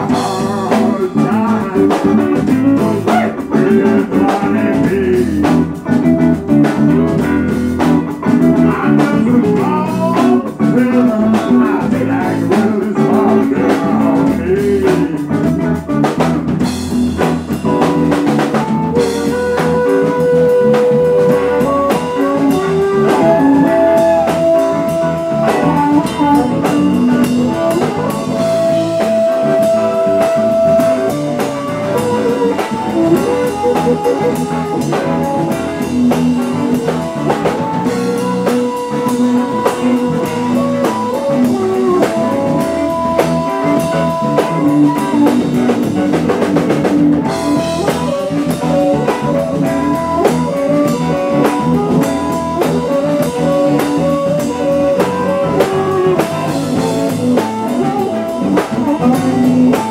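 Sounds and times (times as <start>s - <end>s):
electric blues band: 0.0s - 59.9s
harmonica long bent notes: 16.7s - 59.9s.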